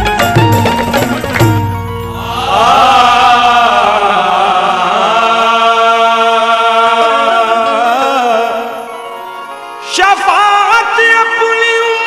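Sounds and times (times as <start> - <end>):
drum strikes: 0.0 - 4.2
harmonium: 0.0 - 12.0
voices singing long held note: 2.0 - 10.1.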